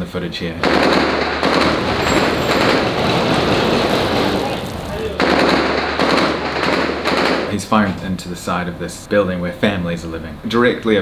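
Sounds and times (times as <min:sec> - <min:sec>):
rapid automatic rifle fire: 0:00.6 - 0:07.6.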